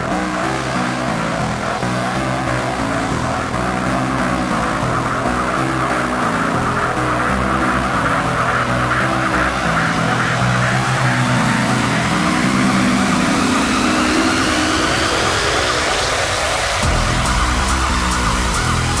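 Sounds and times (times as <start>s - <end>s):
hissing synth sweep: 0.0s - 19.0s
pulsing synth bassline: 0.0s - 19.0s
tech trance music: 0.0s - 19.0s.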